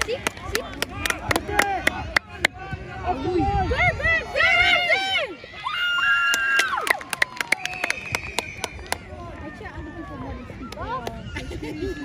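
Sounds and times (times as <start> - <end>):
spectators shouting and yelling: 0.0 - 12.0.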